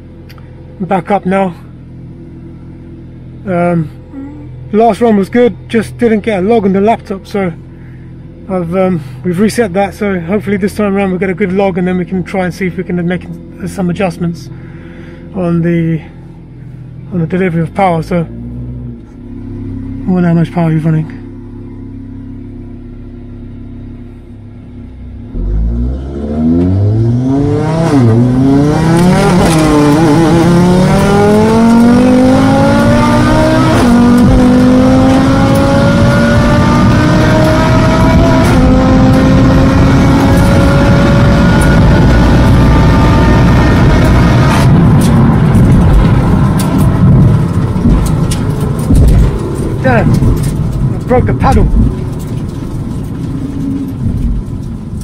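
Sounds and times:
road and wind noise: 0.0s - 55.0s
car engine accelerating through gears: 16.0s - 55.0s.

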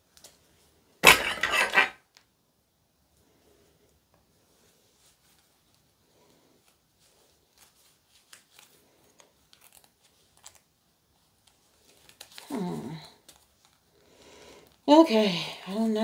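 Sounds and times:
hand tool clicking and scraping: 1.0s - 1.9s.

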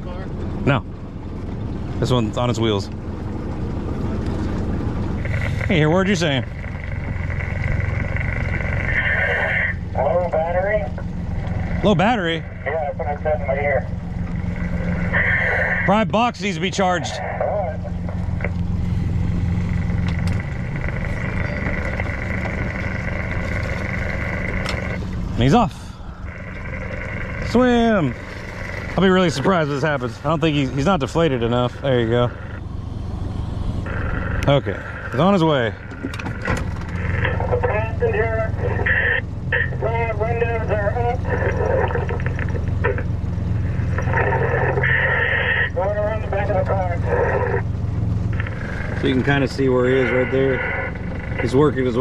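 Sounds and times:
boat motor humming: 0.0s - 52.0s
steady high whine: 0.0s - 52.0s
rushing crackly radio noise: 3.9s - 52.0s
tinny voice over radio: 8.8s - 11.0s, 12.3s - 13.9s, 15.1s - 16.0s, 16.9s - 18.1s, 37.2s - 43.1s, 44.0s - 47.6s.

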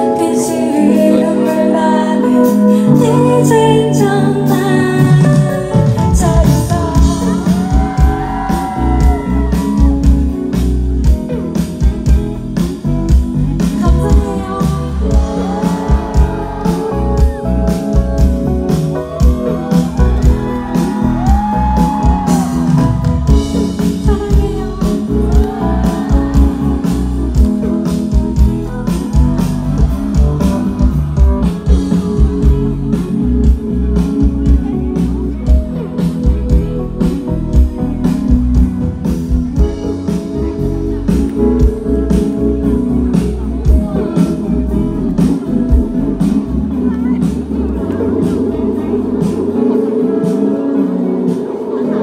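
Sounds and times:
guitar: 0.0s - 52.0s
live band playing: 0.0s - 52.0s
electric bass low notes: 3.0s - 51.6s
drums steady beat: 4.9s - 52.0s.

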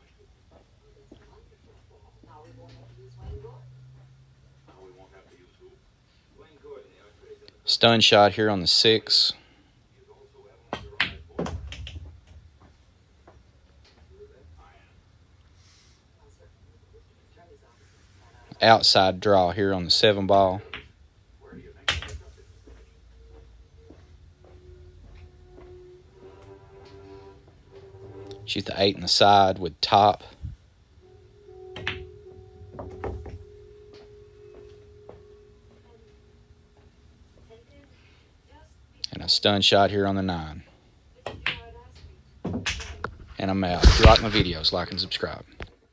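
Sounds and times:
billiard balls clicking: 10.7s - 12.4s, 21.8s - 22.3s
cue ball striking ball: 31.7s - 33.4s.

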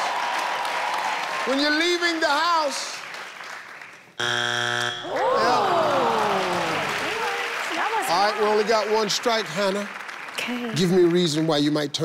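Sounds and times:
harsh low buzzer: 4.2s - 5.2s
audience groaning: 5.1s - 8.8s.

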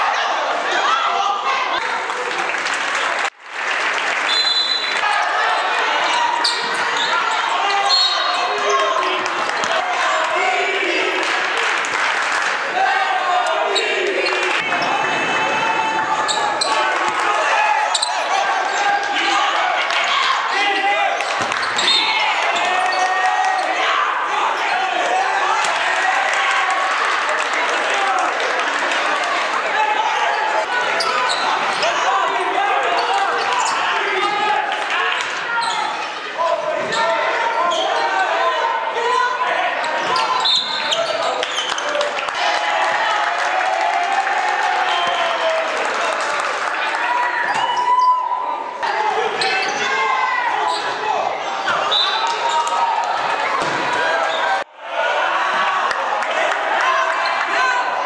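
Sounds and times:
voices shouting and calling out: 4.3s - 11.4s, 12.6s - 58.0s.

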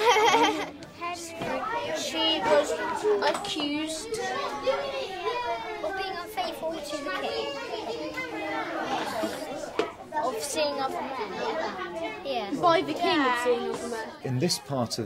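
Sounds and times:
children talking: 0.0s - 15.0s.

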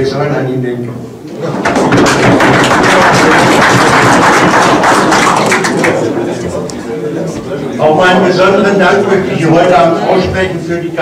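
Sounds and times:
audience applauding: 1.4s - 6.6s.

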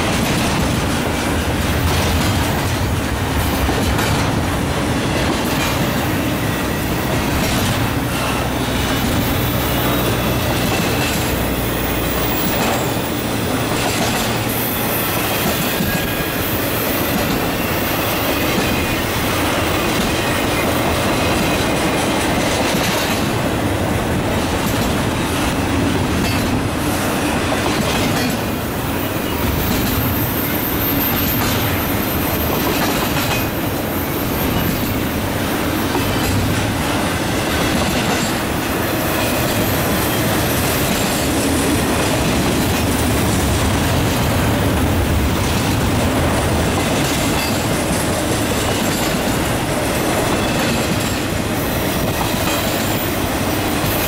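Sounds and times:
freight train wheels on rail: 0.0s - 54.0s.

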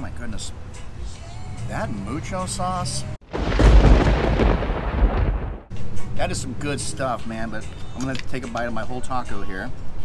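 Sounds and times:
explosion boom with rumble: 3.3s - 5.7s.

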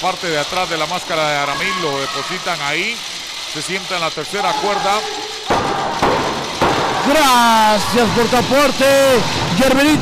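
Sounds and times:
echo in hall: 4.0s - 10.0s.

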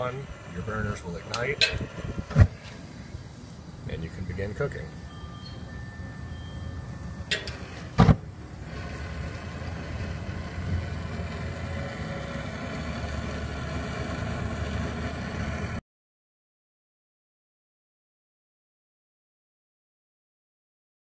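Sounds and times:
gas burners rushing: 0.0s - 15.8s
gas igniting with loud thump: 1.4s - 3.1s, 7.3s - 8.3s.

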